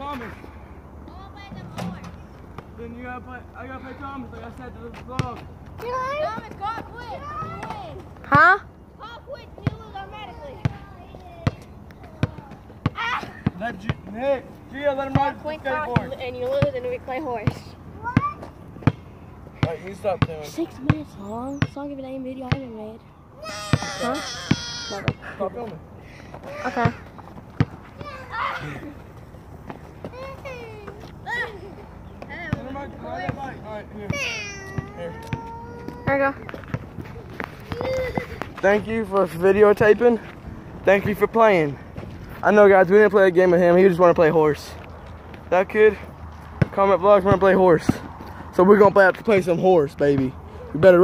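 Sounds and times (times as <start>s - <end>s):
basketball bouncing on asphalt: 3.7s - 8.6s, 9.3s - 31.2s, 32.0s - 42.4s, 44.8s - 51.0s
children calling and shouting: 5.4s - 13.8s, 15.0s - 40.3s.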